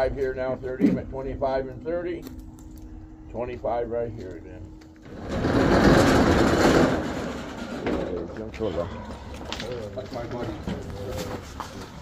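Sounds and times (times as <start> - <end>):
voices talking: 0.0 - 5.6, 7.6 - 12.0.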